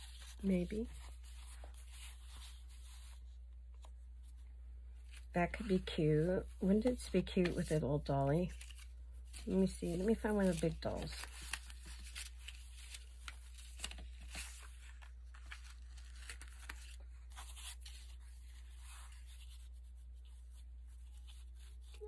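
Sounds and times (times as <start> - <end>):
paper rustling and crinkling: 0.0 - 22.0.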